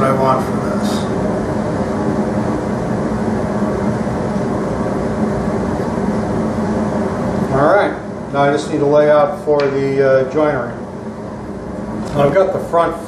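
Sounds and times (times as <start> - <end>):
speech: 0.0 - 1.1, 7.5 - 10.8, 12.1 - 13.0
steady rushing drone: 0.0 - 13.0.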